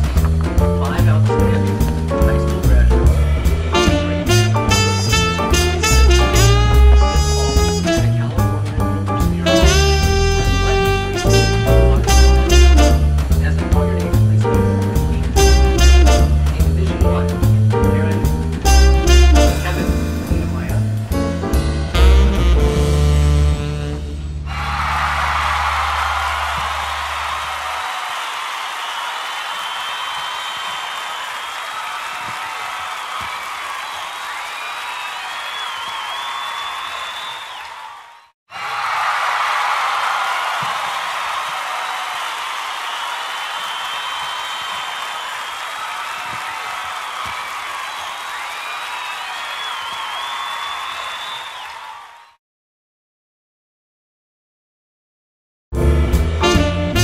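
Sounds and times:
crowd applauding and cheering: 0.0 - 21.0, 24.4 - 52.4.

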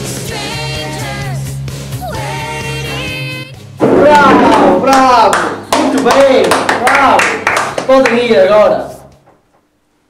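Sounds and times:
sharp hand claps: 4.5 - 8.3.

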